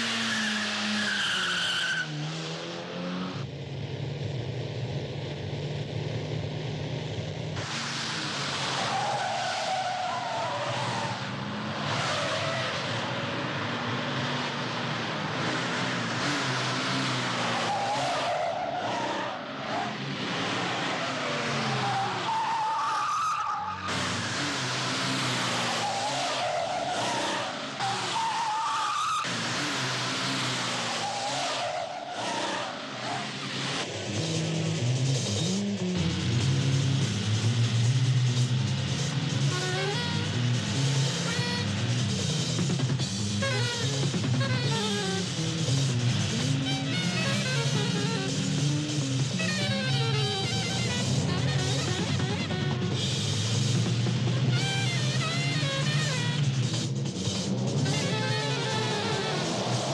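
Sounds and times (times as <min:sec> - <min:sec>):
car engines revving: 0:00.0 - 0:59.9
tyres squealing: 0:08.7 - 0:11.3, 0:20.8 - 0:33.3.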